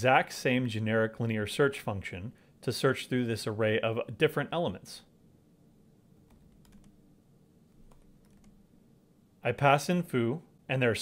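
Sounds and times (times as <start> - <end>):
low room hum: 0.0 - 11.0
faint keyboard typing: 6.2 - 7.0, 7.7 - 8.6.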